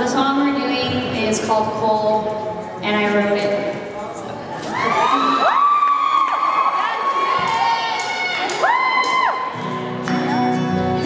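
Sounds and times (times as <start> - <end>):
high-pitched whoops and screams: 4.6 - 10.4
audience cheering: 4.7 - 10.4
band guitars playing: 9.5 - 11.0.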